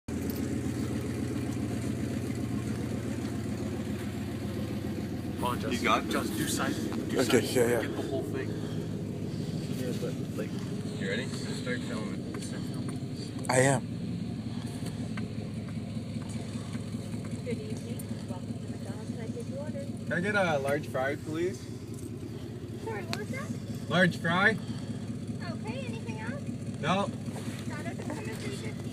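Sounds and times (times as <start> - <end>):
truck engine idling: 0.1 - 28.9.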